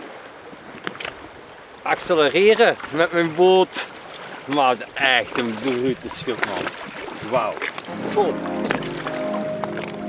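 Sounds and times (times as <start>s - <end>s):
water lapping against boat: 0.0s - 10.0s
wind: 0.0s - 10.0s.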